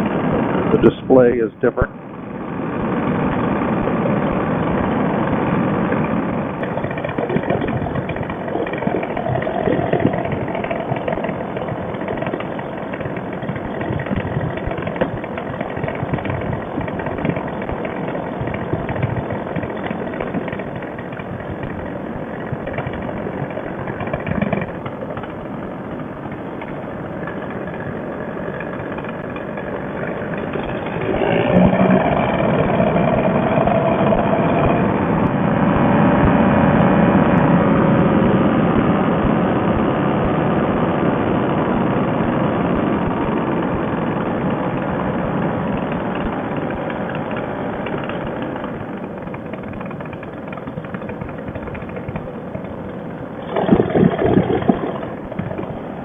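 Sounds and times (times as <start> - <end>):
paramotor engine and propeller: 0.0 - 56.0.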